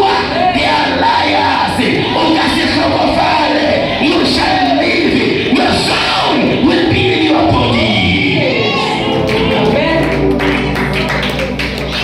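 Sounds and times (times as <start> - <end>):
man singing into a microphone: 0.0 - 9.1
electronic keyboard chords: 6.2 - 12.0.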